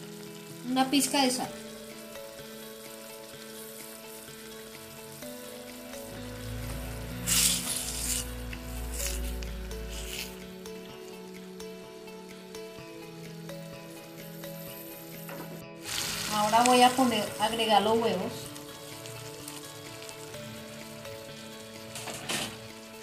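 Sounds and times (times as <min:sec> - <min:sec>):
sauce sizzling in a metal pan: 0:00.0 - 0:23.0
soft background music: 0:00.0 - 0:23.0
spoon stirring and scraping: 0:07.3 - 0:10.5.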